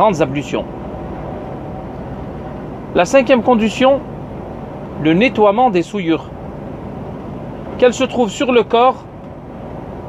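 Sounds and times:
car road noise: 0:00.0 - 0:10.0.

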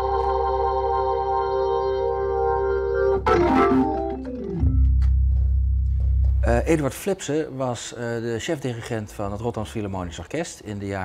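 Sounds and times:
organ with rotating speaker: 0:00.0 - 0:05.4.

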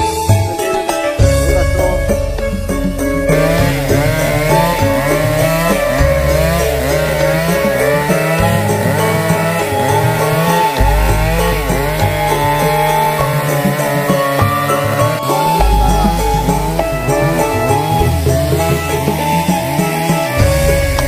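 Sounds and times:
background music: 0:00.0 - 0:21.0
chainsaw revving: 0:03.3 - 0:21.0.

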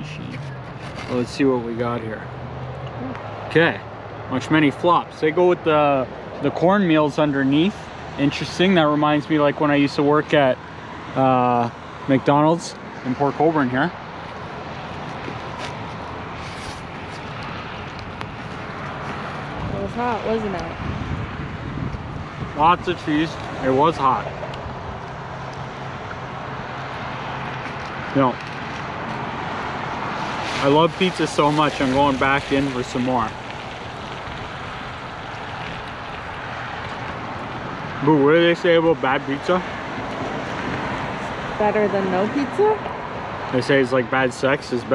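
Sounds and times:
passing traffic: 0:00.0 - 0:44.9
wind: 0:00.0 - 0:44.9
wind on microphone: 0:18.0 - 0:25.0.

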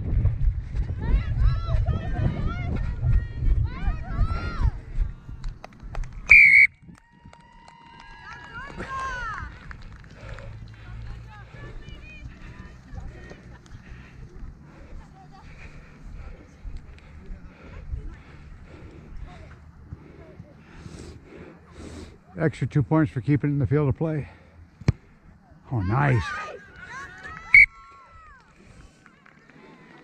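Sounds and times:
referee's whistle blast: 0:06.3 - 0:06.7
distant voices: 0:07.2 - 0:30.0.

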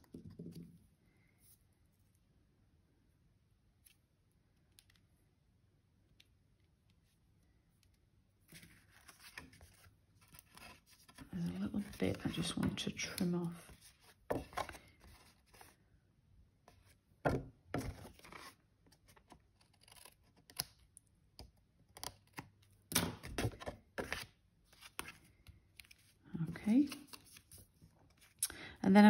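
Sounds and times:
card handled and set down: 0:08.5 - 0:15.7, 0:16.7 - 0:19.4.

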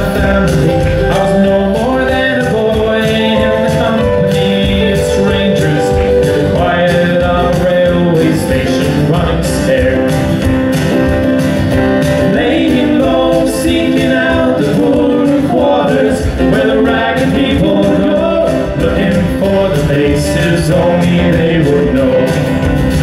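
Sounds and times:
two men singing: 0:00.0 - 0:10.4, 0:12.2 - 0:22.7
box drum beat: 0:00.0 - 0:23.0
strummed acoustic guitars: 0:00.0 - 0:23.0.

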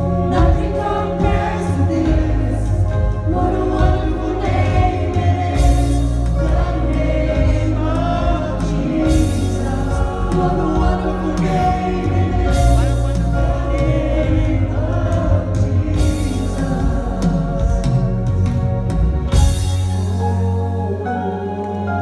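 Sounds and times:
steady bass: 0:00.0 - 0:21.7
backing voices singing: 0:00.0 - 0:22.0.

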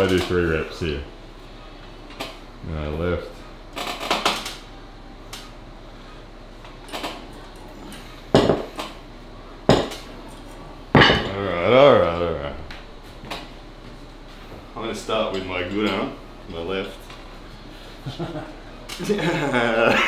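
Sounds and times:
person groaning: 0:11.3 - 0:12.7.

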